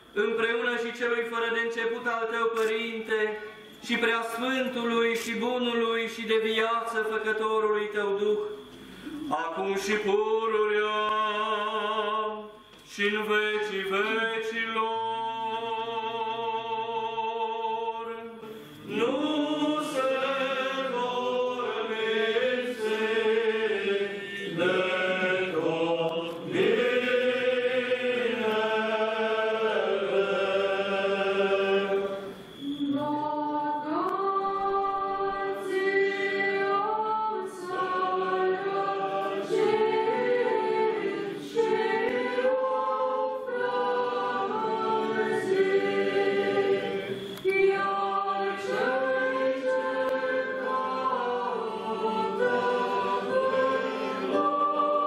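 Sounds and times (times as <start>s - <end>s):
choir chanting a cappella: 0.0s - 55.0s.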